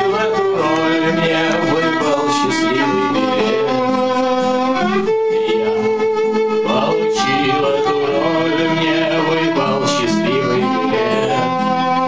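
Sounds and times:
acoustic guitar: 0:00.0 - 0:12.0
violin playing: 0:00.0 - 0:12.0.

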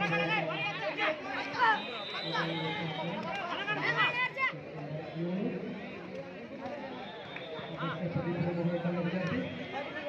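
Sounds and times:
crowd chattering and shouting: 0:00.0 - 0:10.0.

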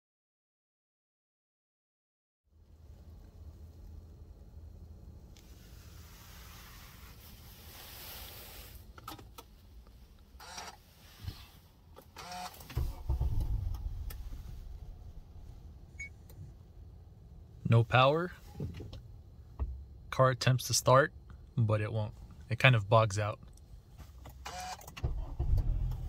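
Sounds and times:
car engine failing to start: 0:12.0 - 0:15.4, 0:24.3 - 0:26.0.

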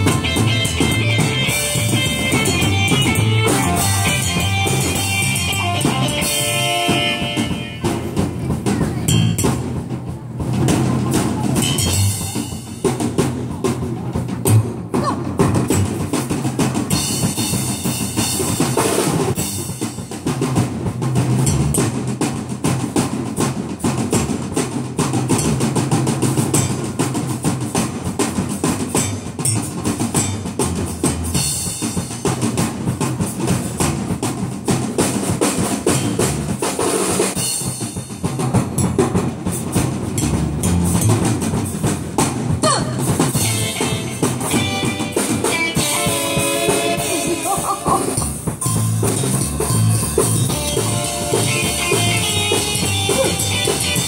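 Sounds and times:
pitched melody: 0:00.0 - 0:08.2, 0:42.8 - 0:54.0
fast drumming with bass drum and snare: 0:00.0 - 0:54.0.

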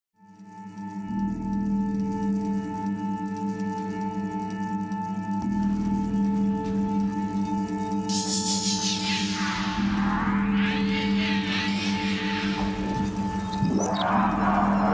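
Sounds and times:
ringing tones drone: 0:05.5 - 0:14.9
low bass layer: 0:08.8 - 0:14.9.

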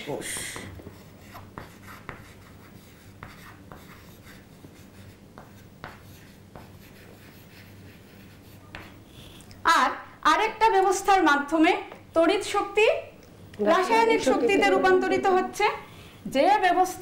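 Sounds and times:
chalk tapping on board: 0:00.4 - 0:09.0
chalk scratching on chalkboard: 0:00.8 - 0:09.4.

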